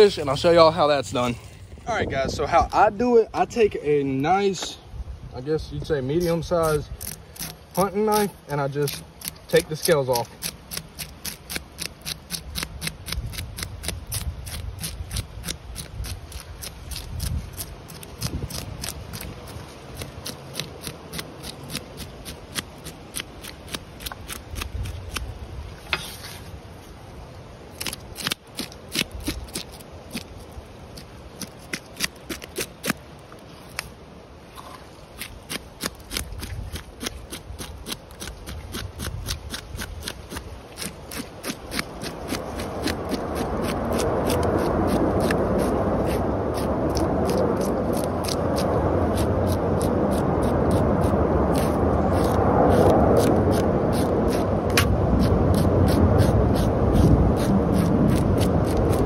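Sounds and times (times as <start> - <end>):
knife scraping fish scales: 6.2 - 26.6, 27.8 - 33.0, 34.6 - 59.0.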